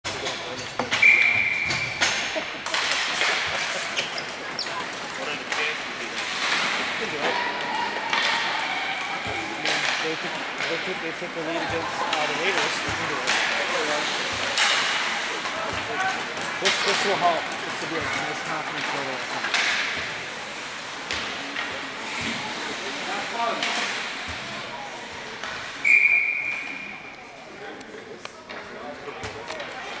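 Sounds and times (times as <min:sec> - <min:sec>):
crowd chatter: 0:00.0 - 0:30.0
spectators' voices: 0:00.0 - 0:30.0
clacks of sticks and puck: 0:00.1 - 0:26.8, 0:27.7 - 0:30.0
referee's whistle blast: 0:01.0 - 0:02.0, 0:25.8 - 0:26.9
stick hitting puck: 0:02.0 - 0:04.0, 0:11.9 - 0:20.2
skate blades scraping ice: 0:02.6 - 0:24.4.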